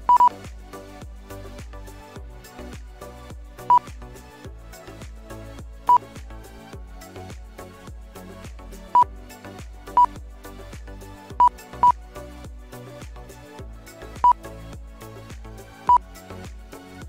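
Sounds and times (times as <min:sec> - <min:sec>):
music with steady beat: 0:00.0 - 0:17.0.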